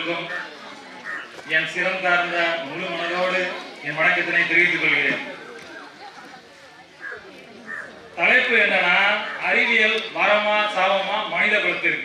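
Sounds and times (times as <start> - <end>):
low background noise: 0.0 - 12.0
crow cawing: 0.3 - 1.3, 7.0 - 8.0.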